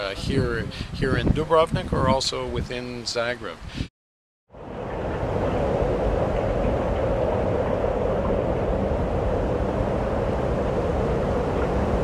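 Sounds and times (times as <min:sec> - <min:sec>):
cable car rumbling: 0:04.6 - 0:12.0.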